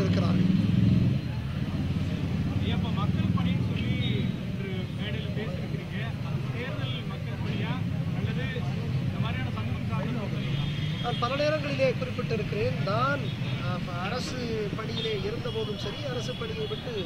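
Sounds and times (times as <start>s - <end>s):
people talking: 2.5s - 17.0s.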